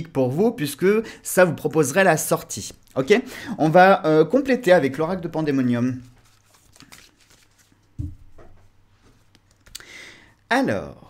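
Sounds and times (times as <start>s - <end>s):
cards rustling: 5.2s - 8.3s
soft thump: 8.0s - 8.7s.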